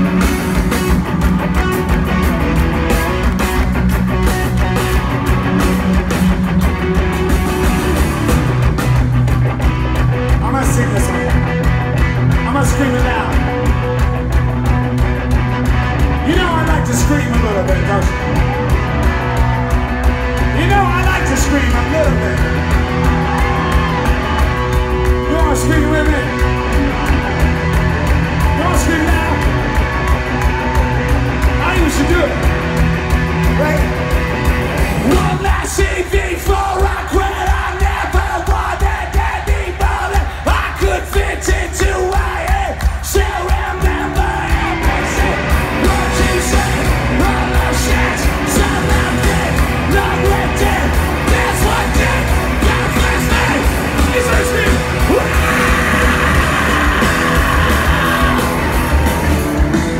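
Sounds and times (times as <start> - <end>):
audience yelling: 0.0 - 59.9
drums with driving beat: 0.0 - 59.9
electric guitar: 0.0 - 59.9
lead vocal singing: 35.0 - 59.2.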